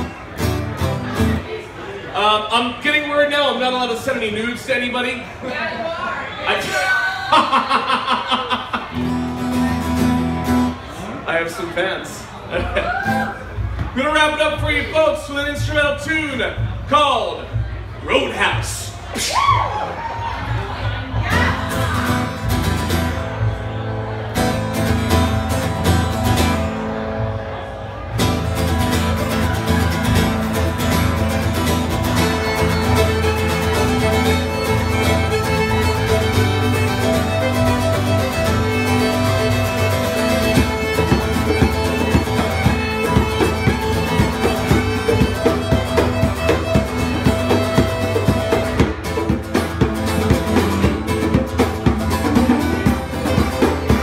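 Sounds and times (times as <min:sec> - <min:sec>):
acoustic guitar: 0:00.0 - 0:54.0
fiddle melody: 0:21.3 - 0:54.0
hand drum beat: 0:29.8 - 0:54.0.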